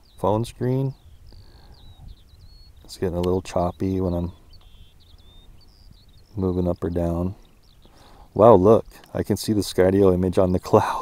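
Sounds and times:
bird singing: 0:00.0 - 0:11.0.

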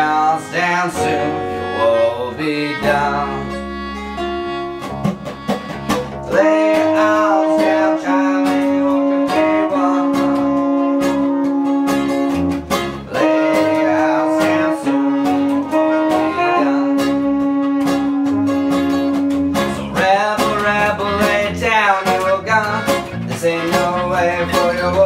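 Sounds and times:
wavering vocal line: 0:00.0 - 0:04.0, 0:06.2 - 0:11.8, 0:13.0 - 0:25.0
bass: 0:00.0 - 0:25.0
strummed acoustic guitar: 0:00.0 - 0:25.0
trumpet and trombone notes: 0:00.0 - 0:25.0.

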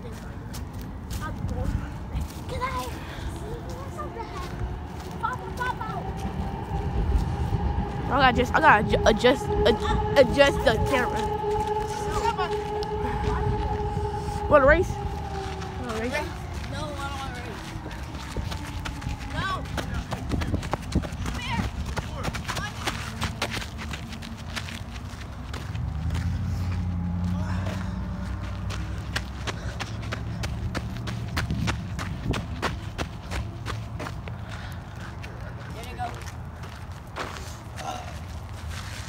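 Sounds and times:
footsteps of people running: 0:00.0 - 0:08.0, 0:11.1 - 0:39.0
low rumble: 0:00.7 - 0:35.1
distant voices calling: 0:01.7 - 0:36.6.

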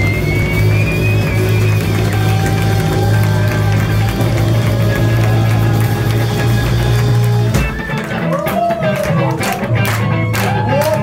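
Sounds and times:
disco funk band playing: 0:00.0 - 0:11.0.

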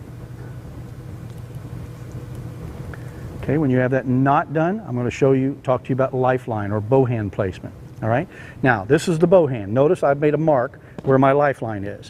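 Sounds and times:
low hum: 0:00.0 - 0:11.4.

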